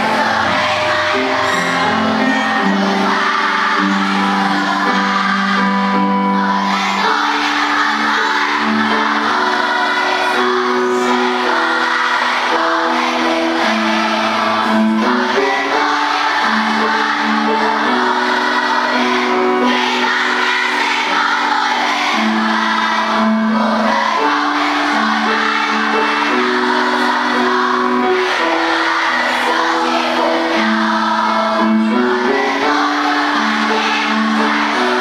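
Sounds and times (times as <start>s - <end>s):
children singing as a choir: 0.0s - 35.0s.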